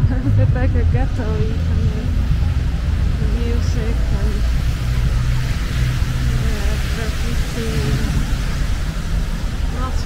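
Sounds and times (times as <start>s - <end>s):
faint voices: 0.0s - 10.0s
traffic rumble: 0.0s - 10.0s
wind on microphone: 0.0s - 10.0s.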